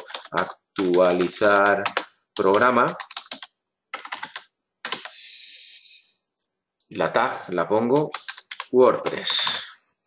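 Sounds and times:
typing on computer keyboard: 0.0 - 5.2, 7.9 - 9.6.

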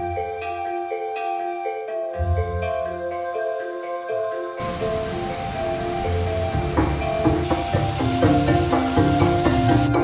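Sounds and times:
light melodic music: 0.0 - 10.0
water rushing in waterfall: 4.6 - 9.9.

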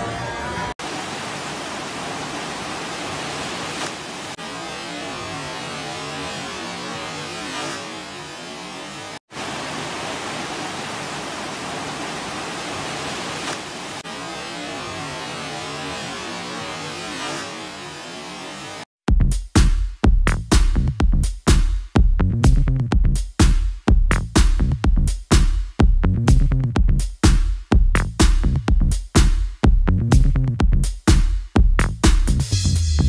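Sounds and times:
water rushing over ride surface: 0.8 - 8.0, 8.7 - 17.6.

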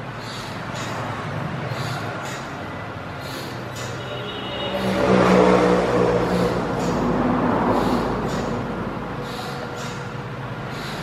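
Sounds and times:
vehicle engine passing by: 0.2 - 11.0.

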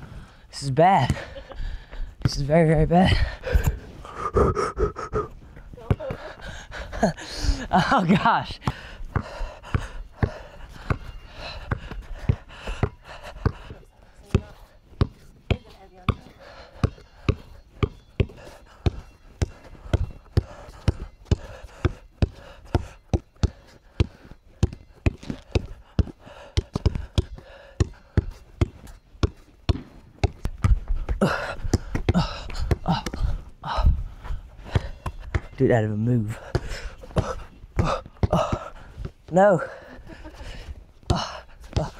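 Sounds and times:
basketball bouncing on concrete: 5.8 - 6.3, 8.6 - 33.2, 34.7 - 35.6, 36.3 - 39.2, 41.0 - 41.9.

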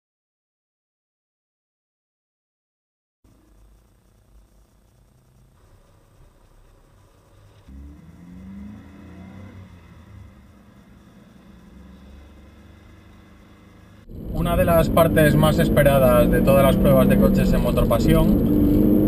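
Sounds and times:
car engine accelerating: 7.3 - 19.0.

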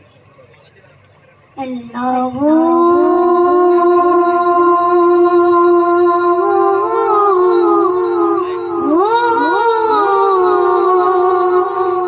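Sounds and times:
boy singing through microphone: 1.6 - 12.0.

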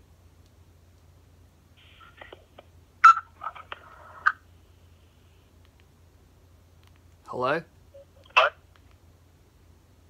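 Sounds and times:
phone speaker crackling bursts: 1.8 - 4.5, 8.0 - 8.9.

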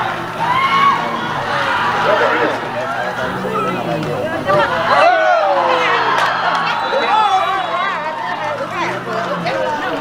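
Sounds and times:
indistinct chatter: 1.3 - 10.0.

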